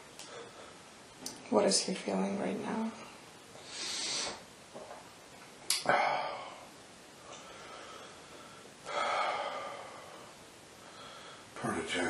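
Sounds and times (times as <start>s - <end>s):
person breathing out: 3.6s - 4.4s.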